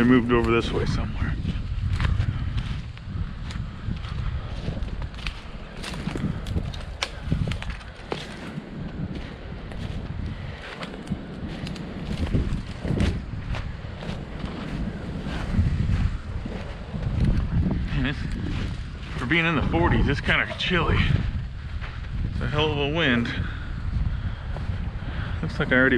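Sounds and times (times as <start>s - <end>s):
wind rumbling on microphone: 0.0s - 25.9s
footsteps through snow and leaves: 0.6s - 22.3s.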